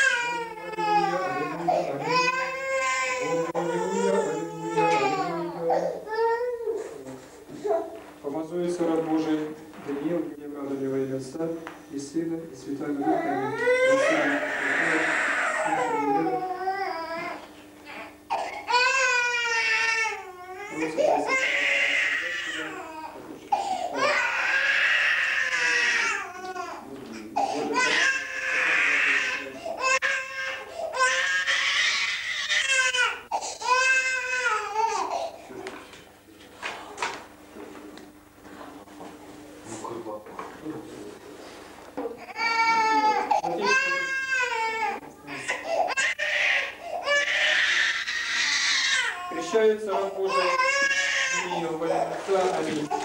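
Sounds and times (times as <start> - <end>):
infant crying: 0.0 - 7.0, 13.0 - 26.8, 27.4 - 35.4, 42.2 - 53.0
infant sobbing: 0.0 - 7.0, 13.0 - 26.8.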